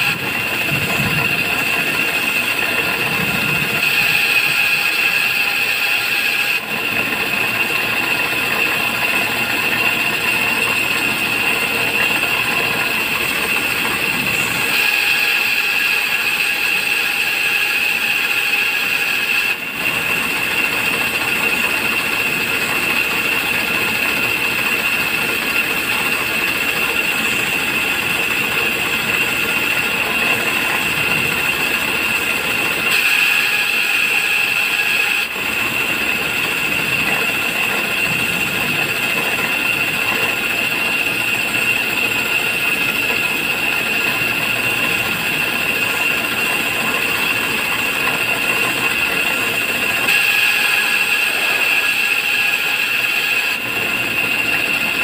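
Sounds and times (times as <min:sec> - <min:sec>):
bench grinder whining: 0:00.0 - 0:55.0
wood pressed on grinding wheel: 0:00.0 - 0:55.0.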